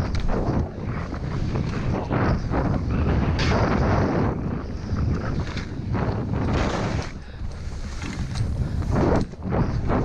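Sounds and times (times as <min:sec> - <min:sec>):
wind buffeting microphone: 0:00.0 - 0:10.0
skis scraping through snow: 0:00.2 - 0:10.0.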